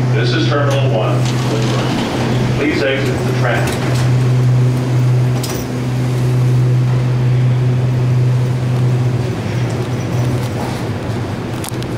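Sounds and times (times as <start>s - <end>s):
low machine hum: 0.0s - 11.9s.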